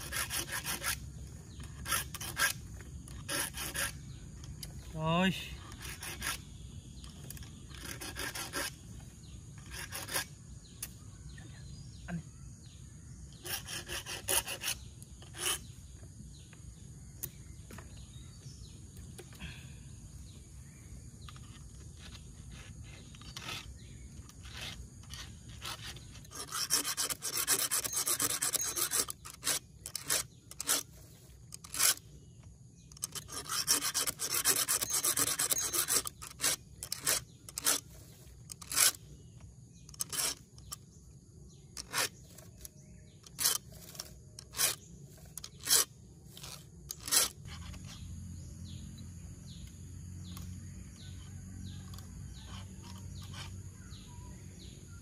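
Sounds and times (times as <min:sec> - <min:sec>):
file rasping on chainsaw chain: 0:00.0 - 0:04.1, 0:05.7 - 0:06.5, 0:07.2 - 0:08.8, 0:09.6 - 0:10.4, 0:13.4 - 0:15.7, 0:22.0 - 0:32.0, 0:32.9 - 0:39.0, 0:39.9 - 0:40.8, 0:41.8 - 0:42.6, 0:43.2 - 0:48.0.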